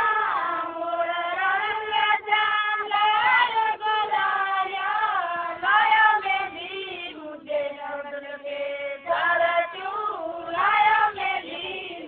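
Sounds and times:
woman singing folk song: 0.2s - 12.0s.

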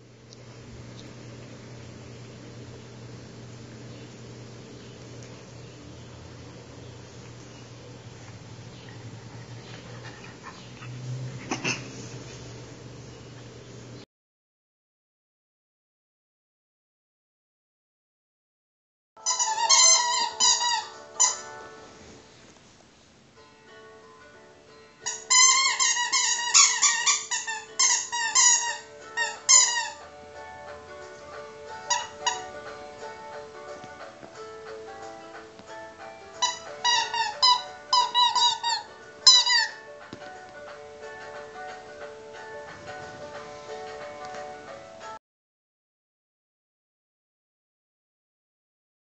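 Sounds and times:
steady low hum: 0.0s - 14.0s
puppy yipping: 19.2s - 21.5s, 31.9s - 32.5s
squeaky toy squeaking: 19.2s - 21.6s, 25.0s - 30.0s, 31.8s - 32.6s, 36.4s - 39.8s
background music: 19.4s - 22.3s, 23.3s - 26.0s, 27.0s - 45.2s.

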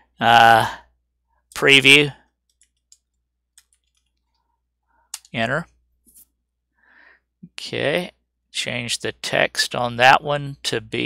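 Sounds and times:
faint keyboard keystrokes: 2.4s - 4.4s.

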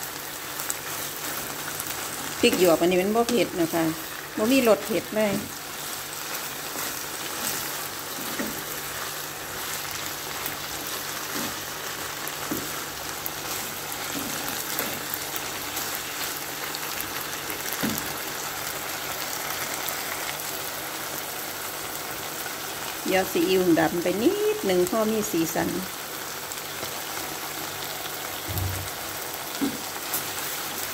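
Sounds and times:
meat sizzling in a frying pan: 0.0s - 30.9s
wooden spatula knocking and scraping: 6.3s - 8.8s.

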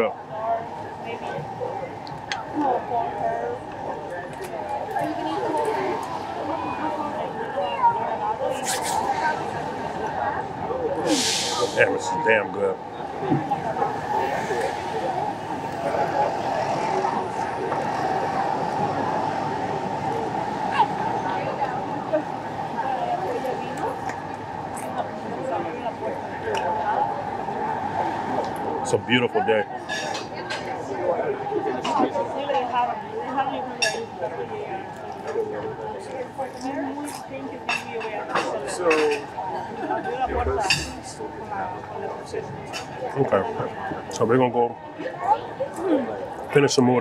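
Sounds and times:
murmur of diners' voices: 0.0s - 47.0s
people talking: 0.0s - 47.0s.

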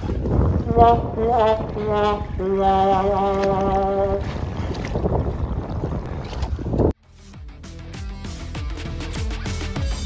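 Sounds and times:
water sloshing and splashing: 0.0s - 7.0s
wind buffeting microphone: 0.0s - 7.0s.

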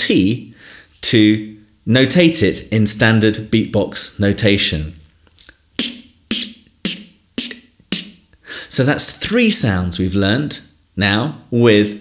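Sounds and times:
beatboxed snare clicks: 5.4s - 8.4s.

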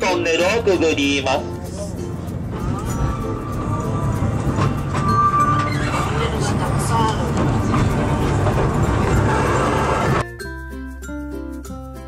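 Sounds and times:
train rumbling on track: 0.0s - 10.2s.

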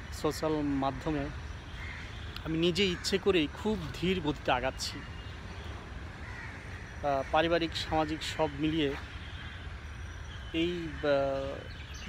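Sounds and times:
distant crow cawing: 0.4s - 11.7s.

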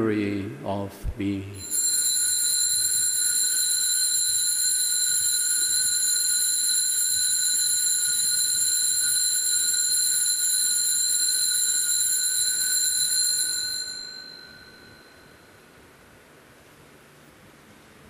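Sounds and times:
altar bells ringing: 1.6s - 15.5s.

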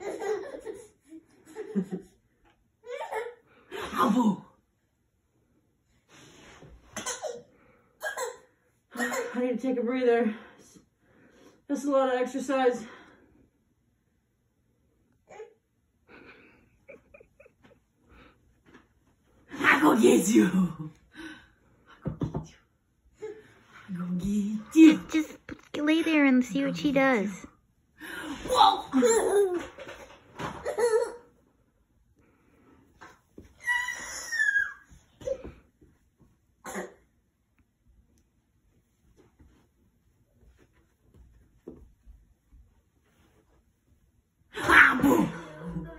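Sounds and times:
toddler squealing: 33.6s - 34.9s.

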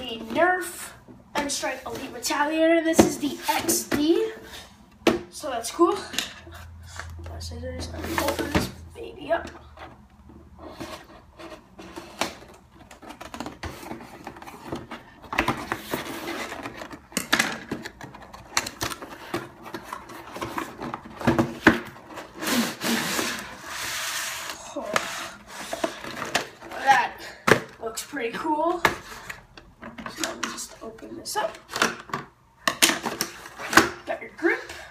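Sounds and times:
cardboard scraping and sliding: 19.0s - 26.1s.

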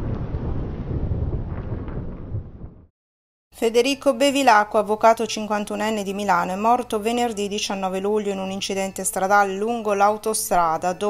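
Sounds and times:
low rumbling logo sound effect: 0.0s - 2.9s.

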